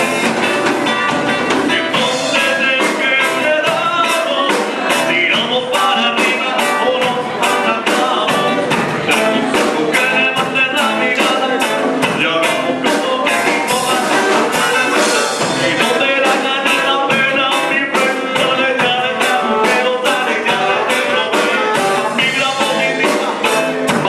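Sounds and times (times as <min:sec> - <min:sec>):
fast steady drum beat: 0:00.0 - 0:24.0
live band playing upbeat song: 0:00.0 - 0:24.0
person singing: 0:00.0 - 0:24.0.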